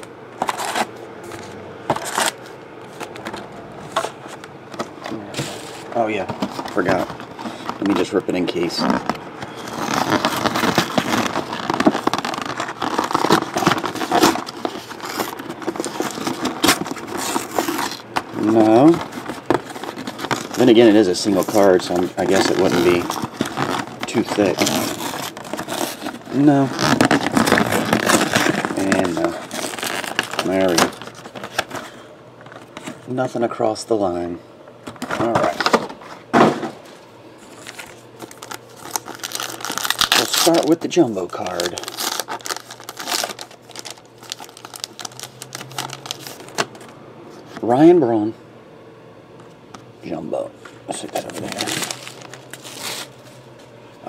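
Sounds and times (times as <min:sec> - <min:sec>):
paper wrappers rustling: 0:00.4 - 0:33.6, 0:34.9 - 0:47.7, 0:50.9 - 0:53.7
cardboard tearing: 0:01.9 - 0:02.4, 0:06.4 - 0:31.9, 0:37.5 - 0:46.7, 0:51.1 - 0:53.2.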